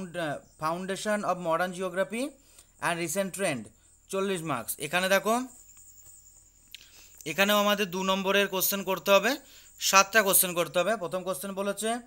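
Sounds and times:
person speaking: 0.0s - 5.6s, 6.7s - 12.0s
faint high-pitched whine: 0.0s - 12.0s
breath: 2.4s - 2.8s, 6.8s - 7.2s, 9.4s - 9.8s.

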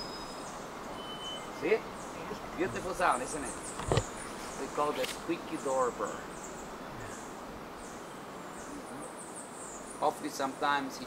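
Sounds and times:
bird whistling song: 0.0s - 1.6s.

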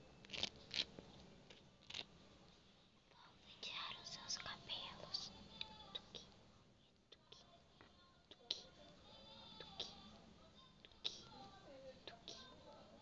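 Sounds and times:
person whispering close-up: 3.1s - 6.4s, 8.3s - 10.2s, 10.9s - 12.6s.

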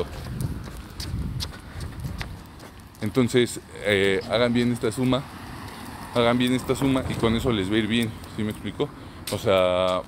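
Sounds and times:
footsteps ticking: 0.0s - 10.0s.

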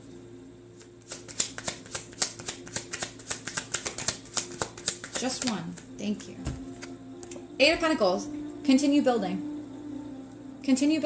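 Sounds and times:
cards being shuffled: 0.8s - 7.4s.

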